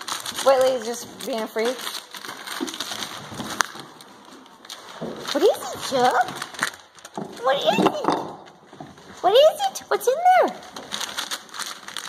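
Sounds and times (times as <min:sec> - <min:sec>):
wrapping paper crinkling and ripping: 0:00.0 - 0:12.0.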